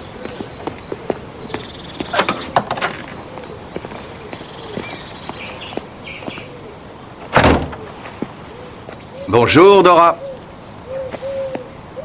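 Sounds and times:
heavy door thud: 2.0s - 3.2s, 7.3s - 7.9s
pigeon cooing: 3.0s - 7.0s, 7.8s - 12.0s.

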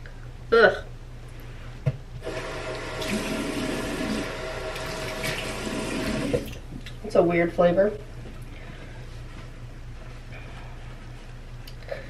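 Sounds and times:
water running from a tap: 2.2s - 6.6s.

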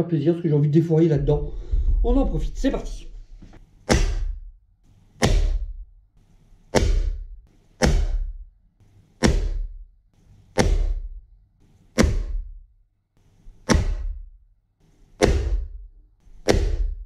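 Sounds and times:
faint low hum: 0.0s - 3.6s.

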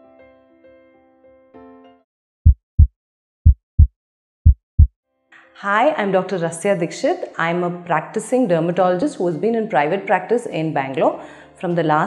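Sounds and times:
heartbeat thumps: 2.4s - 4.9s.

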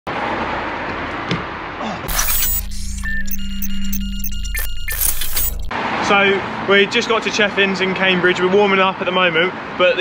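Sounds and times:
road traffic: 5.7s - 8.1s.

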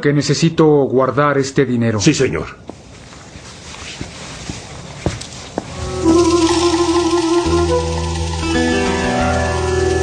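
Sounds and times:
footsteps walking: 2.6s - 6.8s
music: 5.7s - 10.0s.

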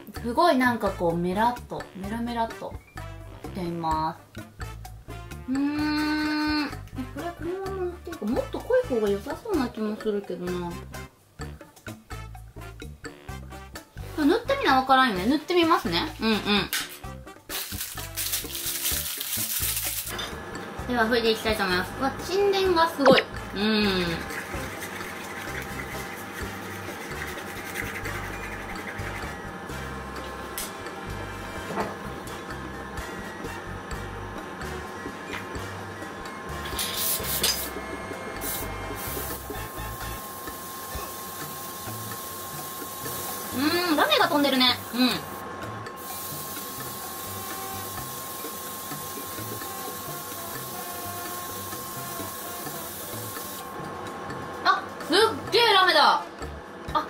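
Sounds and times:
soft background music: 0.0s - 57.0s
airbrush spraying hiss: 36.8s - 37.7s, 38.4s - 39.4s, 40.4s - 43.7s, 46.0s - 53.6s.

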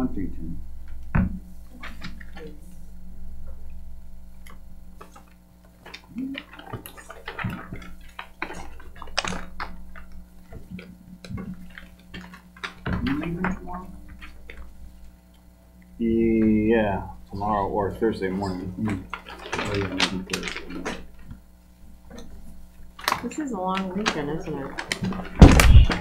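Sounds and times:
steady electrical hum: 0.0s - 26.0s
papers rustling: 1.0s - 2.9s, 4.4s - 15.3s, 16.2s - 26.0s
knocks and clicks of items handled: 4.4s - 15.1s, 18.4s - 21.4s, 22.1s - 26.0s.

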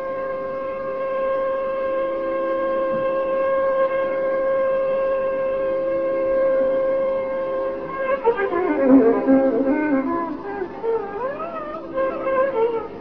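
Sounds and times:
classical indian melody with glides: 0.0s - 13.0s.

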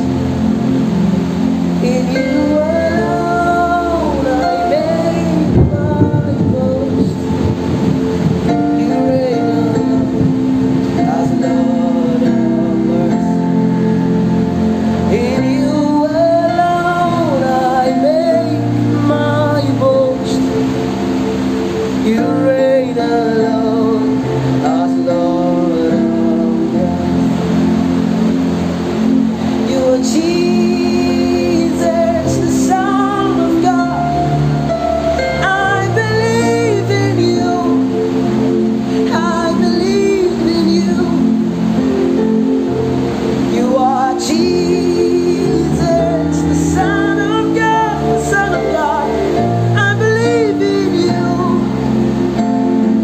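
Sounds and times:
singer holding long note: 0.0s - 53.0s
worship band playing: 0.0s - 53.0s.

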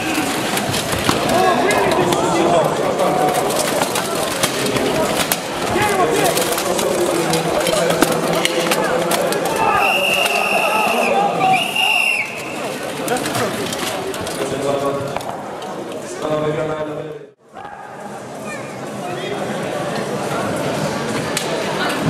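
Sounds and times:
people shouting: 9.4s - 12.6s.

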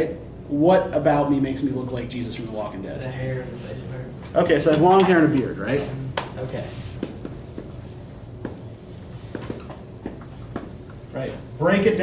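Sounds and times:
marker writing on whiteboard: 6.2s - 12.0s.

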